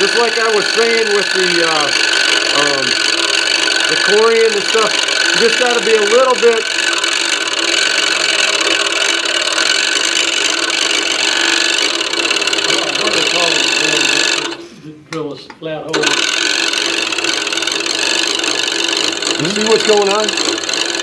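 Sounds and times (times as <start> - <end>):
scroll saw cutting: 0.0 - 14.8, 15.9 - 21.0.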